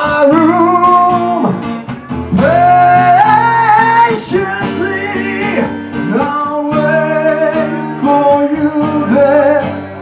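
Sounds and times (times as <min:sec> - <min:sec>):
acoustic guitar: 0:00.0 - 0:10.0
man singing long held notes: 0:02.4 - 0:10.0.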